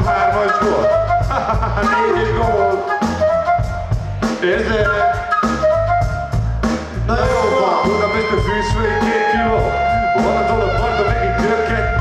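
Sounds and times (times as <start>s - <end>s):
drum kit beat: 0.0s - 12.0s
heavy bass: 0.0s - 12.0s
held melodic line: 0.0s - 12.0s.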